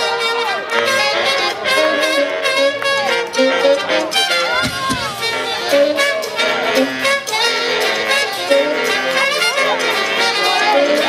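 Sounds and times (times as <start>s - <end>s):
live brass band playing: 0.0s - 11.0s
trumpet playing lead line: 0.0s - 11.0s
drums and cymbals: 4.1s - 9.0s.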